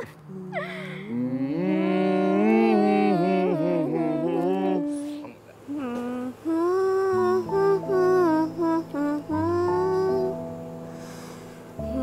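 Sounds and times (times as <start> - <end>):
woman humming a lullaby: 0.0 - 12.0.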